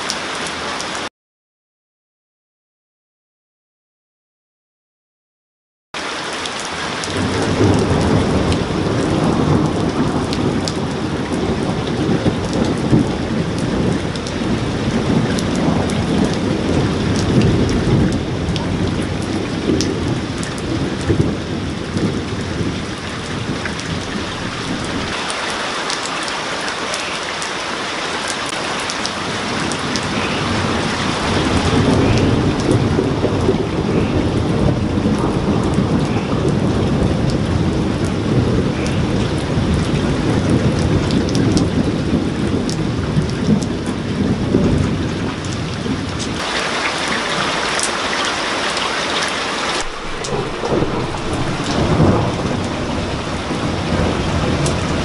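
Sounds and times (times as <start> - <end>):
steady rain: 0.0 - 1.1, 6.0 - 55.0
rolling thunder: 6.9 - 25.4, 28.5 - 48.1, 49.7 - 55.0.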